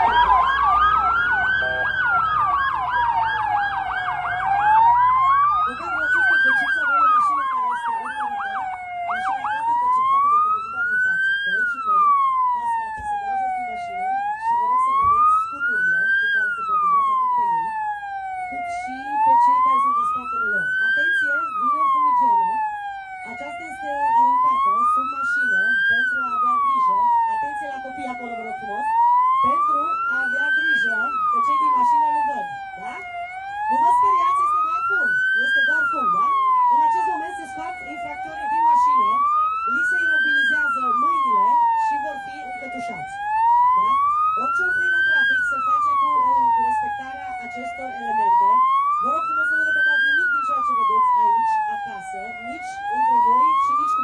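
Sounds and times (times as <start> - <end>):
police siren wailing: 0.0 - 54.0
siren warbling rapidly: 0.0 - 54.0.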